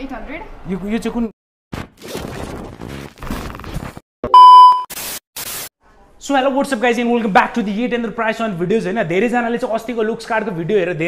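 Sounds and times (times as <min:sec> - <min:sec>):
electronic beep: 0:04.3 - 0:04.9.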